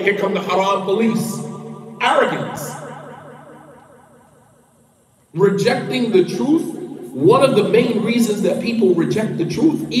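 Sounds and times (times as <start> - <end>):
man speaking in echoing hall: 0.0 - 3.2, 5.3 - 10.0.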